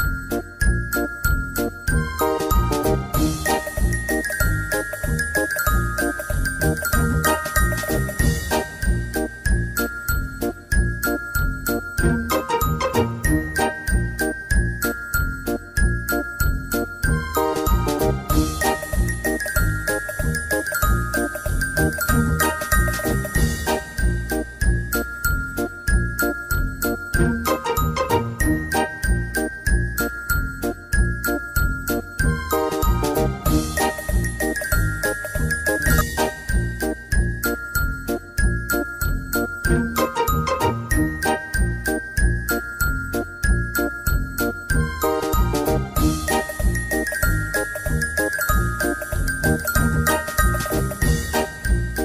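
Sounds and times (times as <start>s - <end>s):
high melody over steady beat: 1.9s - 9.8s, 17.1s - 24.8s, 32.2s - 37.6s, 44.2s - 52.0s.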